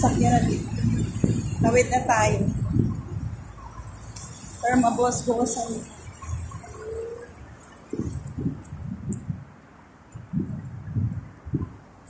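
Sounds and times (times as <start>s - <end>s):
faint street noise: 0.0s - 12.0s.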